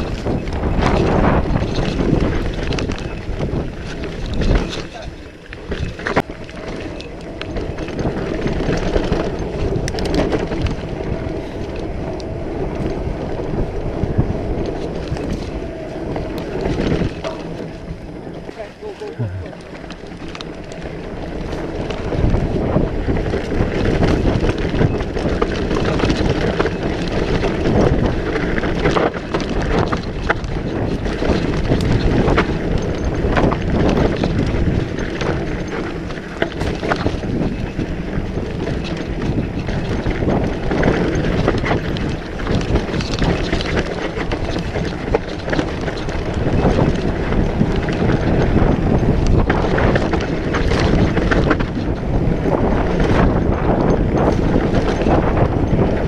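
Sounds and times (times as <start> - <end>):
bike rattling and knocking: 0.0 - 56.0
tyres rolling over dirt and rocks: 0.0 - 56.0
wind buffeting microphone: 0.0 - 56.0.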